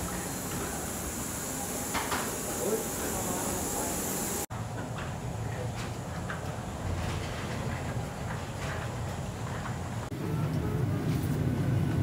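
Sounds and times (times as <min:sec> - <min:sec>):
airliner cabin hum: 0:00.0 - 0:04.5
airport terminal rumble: 0:00.0 - 0:12.0.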